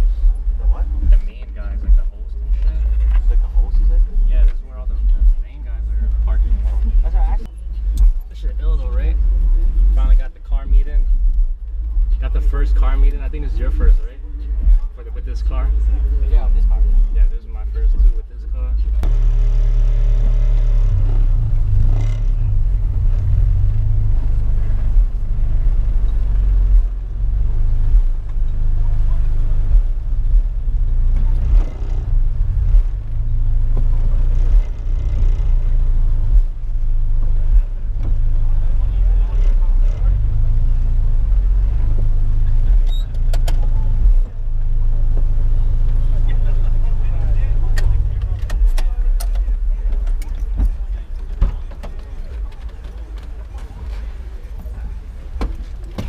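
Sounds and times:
car engine running at low revs: 0.0 - 56.0.

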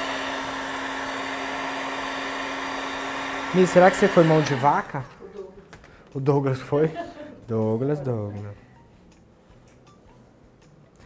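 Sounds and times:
heat gun blowing air: 0.0 - 5.0.

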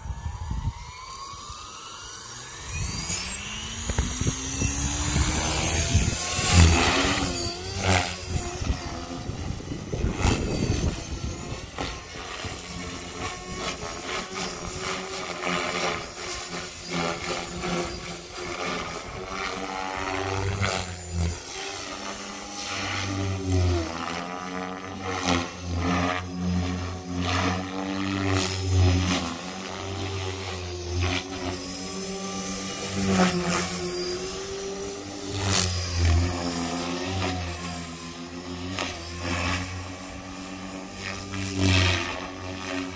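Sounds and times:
helicopter rotor and motor whine: 0.0 - 42.9.

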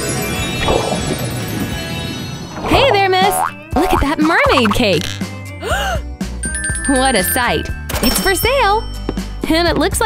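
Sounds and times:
bright background music: 0.7 - 10.0
cartoon boing sound effect: 3.3 - 4.8.

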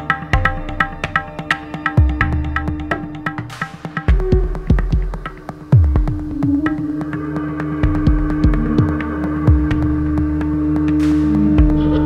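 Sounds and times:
humming drone: 0.0 - 12.0
deep bass thuds: 4.1 - 7.0.

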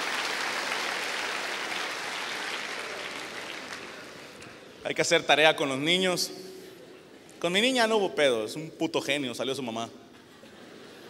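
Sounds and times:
audience applauding: 0.0 - 4.5.

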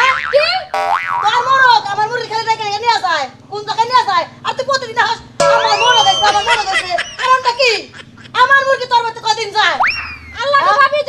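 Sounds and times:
cartoon boing sound effects: 0.0 - 1.6, 5.4 - 6.3, 9.8 - 10.3.

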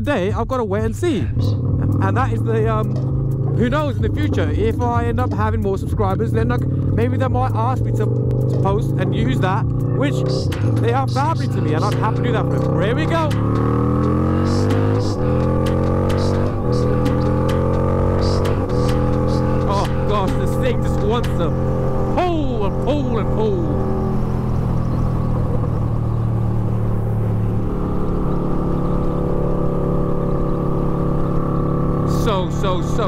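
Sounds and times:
motorcycle engine accelerating: 1.1 - 33.0.

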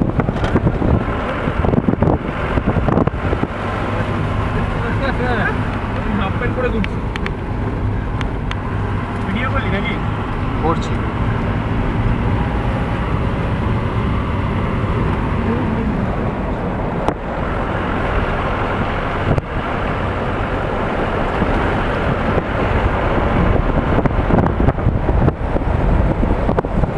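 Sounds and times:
road and engine rumble: 0.0 - 26.9
wind buffeting microphone: 0.0 - 26.9.

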